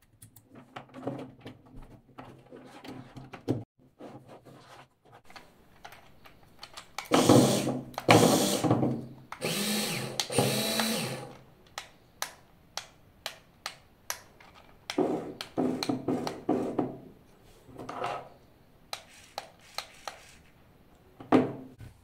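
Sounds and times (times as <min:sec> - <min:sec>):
small electric motors whirring: 0:09.4 - 0:11.4.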